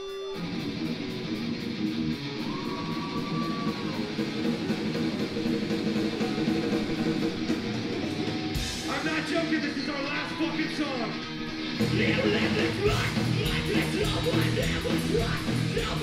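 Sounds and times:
amplified electric guitars: 0:00.0 - 0:16.0.

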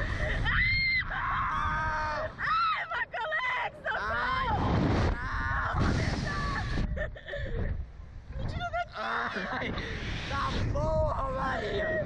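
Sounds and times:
people screaming: 0:00.0 - 0:06.8
wind rumbling on microphone: 0:00.0 - 0:12.0.

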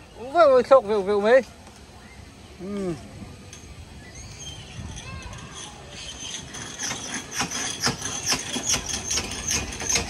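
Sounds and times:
ride mechanism squealing: 0:03.5 - 0:10.0.

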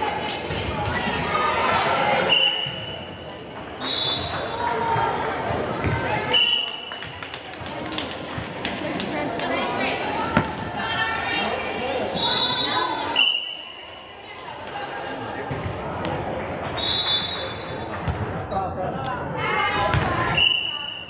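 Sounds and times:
whistle blasts: 0:02.3 - 0:03.1, 0:03.8 - 0:04.4, 0:12.2 - 0:13.8, 0:16.8 - 0:17.8, 0:20.3 - 0:21.0.

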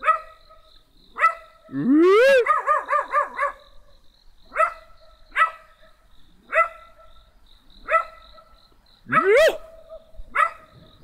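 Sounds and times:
dog barking: 0:00.0 - 0:00.6, 0:01.2 - 0:03.7, 0:04.5 - 0:11.0.

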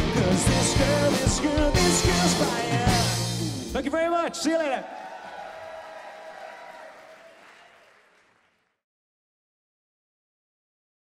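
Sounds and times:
audience applauding: 0:04.6 - 0:08.8.

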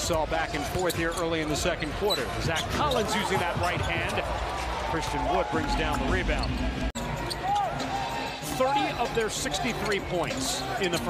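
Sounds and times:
arena crowd noise: 0:00.0 - 0:11.0
sneakers squeaking: 0:00.4 - 0:04.9, 0:06.4 - 0:11.0.

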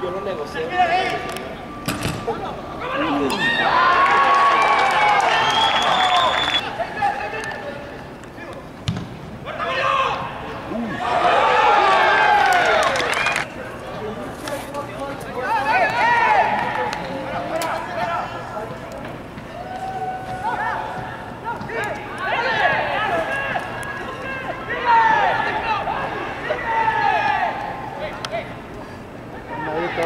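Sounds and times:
players shouting: 0:02.2 - 0:08.6, 0:09.4 - 0:30.0
football kicked with thud: 0:08.9 - 0:09.2.

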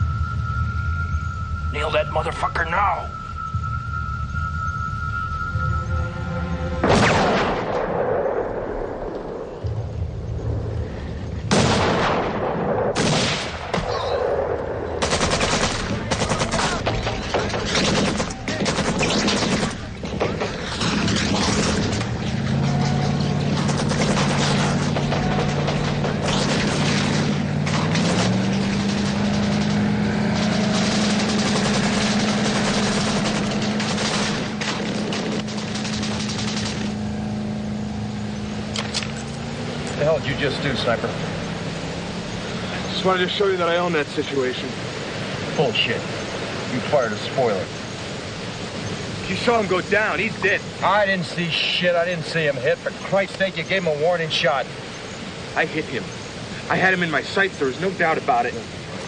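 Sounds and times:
low held music notes: 0:00.0 - 0:08.2
bursts of gunfire: 0:06.8 - 0:09.0, 0:11.5 - 0:37.2
rifle shot with echo: 0:06.8 - 0:09.6, 0:11.5 - 0:16.8.

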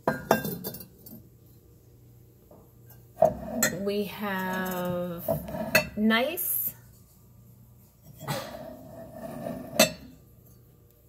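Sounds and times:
ceramic mugs clinking: 0:00.0 - 0:01.3, 0:08.1 - 0:10.7.

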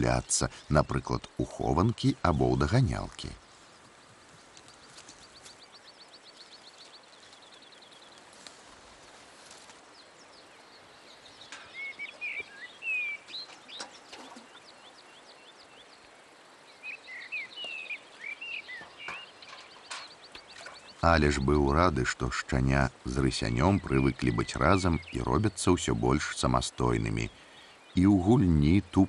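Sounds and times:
birds chirping: 0:00.0 - 0:29.0.

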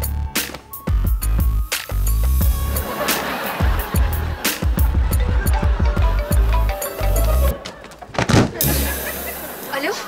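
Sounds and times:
comedy music with bass beat: 0:00.0 - 0:07.6, 0:08.4 - 0:09.8.

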